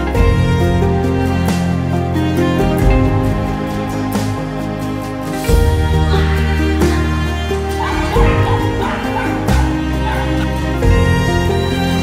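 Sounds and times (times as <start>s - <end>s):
background music: 0.0s - 12.0s
young dogs yipping: 7.6s - 12.0s.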